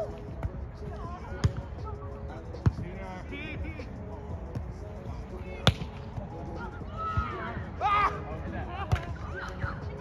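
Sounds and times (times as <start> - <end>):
players shouting: 6.5 - 9.9.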